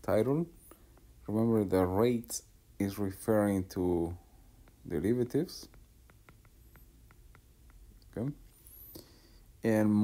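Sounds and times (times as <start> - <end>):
stylus tapping a tablet screen: 4.6 - 8.2.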